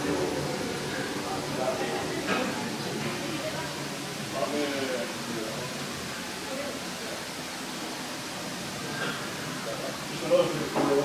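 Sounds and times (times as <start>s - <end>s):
indistinct background chatter: 0.0s - 11.0s
steady room hiss: 0.0s - 11.0s.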